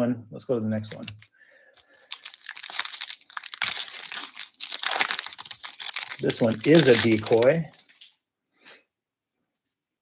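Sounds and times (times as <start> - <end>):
foil wrapper tearing and crinkling: 0.9 - 1.2, 1.8 - 8.0.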